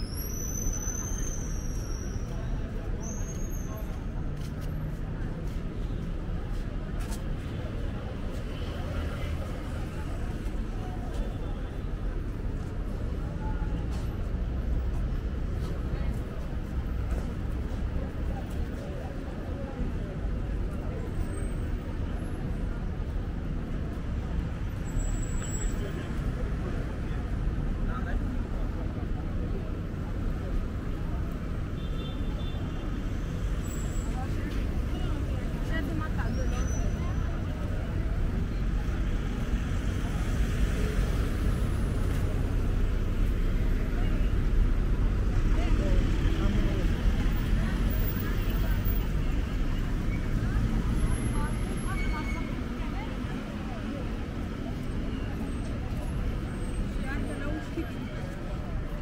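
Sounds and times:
passers-by talking: 0:00.0 - 0:59.0
passing road traffic: 0:00.0 - 0:59.0.

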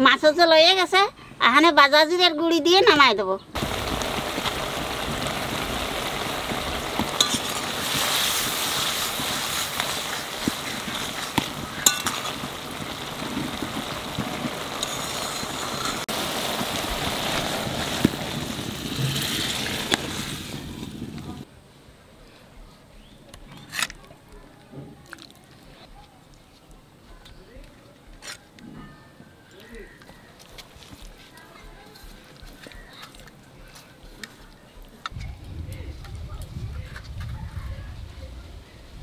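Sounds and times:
vegetables sizzling in a wok: 0:03.6 - 0:21.5
spatula scraping a pan: 0:07.2 - 0:12.4, 0:14.8 - 0:16.1.

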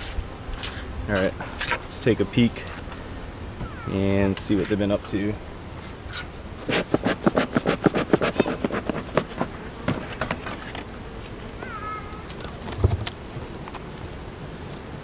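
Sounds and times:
knock of hive cover prying: 0:06.7 - 0:11.0.

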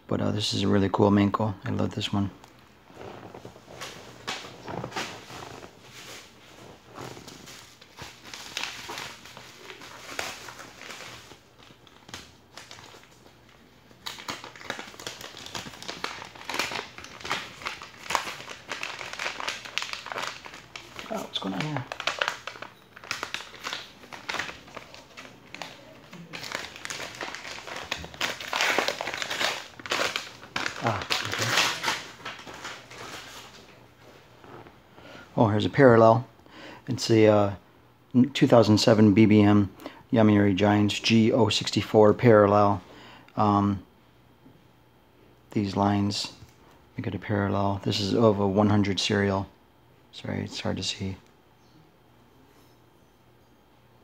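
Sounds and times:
paper envelopes rustling and crinkling: 0:02.9 - 0:34.8.

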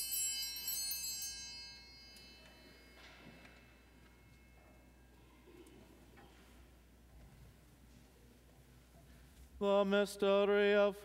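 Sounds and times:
small altar bells jingling: 0:00.0 - 0:06.0.

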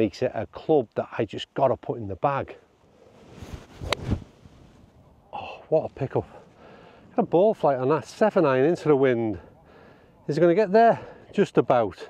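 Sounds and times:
golf club striking ball: 0:03.8 - 0:04.2.

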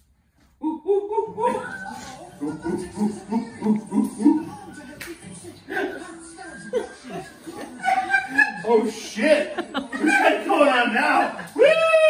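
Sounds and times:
people laughing: 0:00.6 - 0:12.0
people talking: 0:01.0 - 0:12.0.

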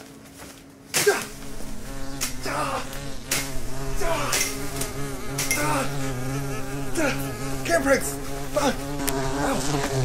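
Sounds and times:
hornets buzzing: 0:00.0 - 0:10.0
insects flying past: 0:00.0 - 0:10.0.

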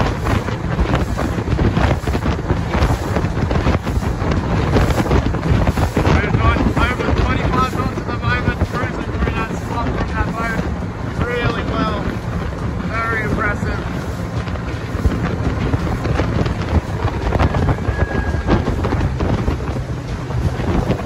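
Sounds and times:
hull knocking on waves: 0:00.0 - 0:21.0
outboard motor running: 0:00.0 - 0:21.0
wind buffeting microphone: 0:00.0 - 0:21.0.

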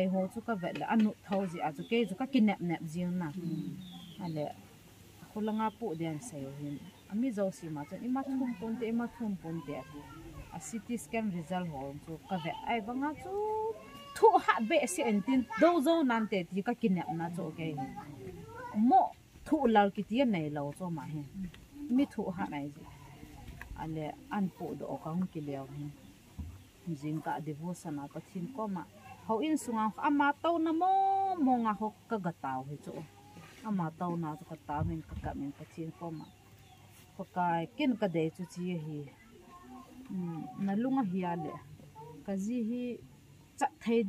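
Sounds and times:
woman speaking: 0:00.0 - 0:04.6, 0:05.2 - 0:18.1, 0:18.8 - 0:23.0, 0:23.7 - 0:26.0, 0:26.8 - 0:36.3, 0:37.2 - 0:39.2, 0:40.1 - 0:44.0
woman speaking impassioned: 0:10.6 - 0:18.0, 0:26.9 - 0:33.0, 0:40.1 - 0:41.6.

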